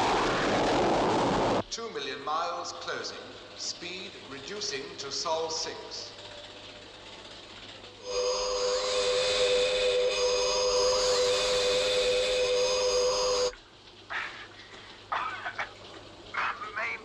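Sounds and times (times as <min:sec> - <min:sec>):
electronic ufo sound effect: 0:08.0 - 0:13.5
whistling tones gliding upward: 0:08.0 - 0:13.5.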